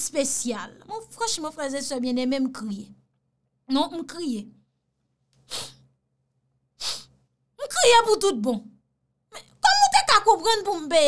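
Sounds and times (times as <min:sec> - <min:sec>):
woman exhaling sharply: 0:05.5 - 0:05.8.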